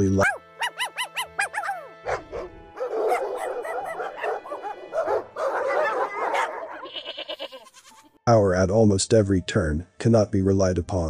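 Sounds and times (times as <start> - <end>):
soft background music: 0.0 - 11.0
dog barking and yipping: 0.2 - 7.0.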